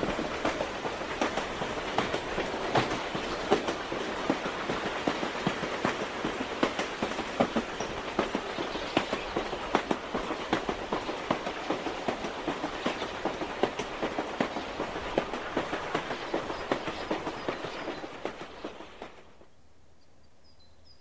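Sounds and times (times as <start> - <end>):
wheels clicking over rails: 0.0 - 19.4
train rumble: 0.0 - 19.5.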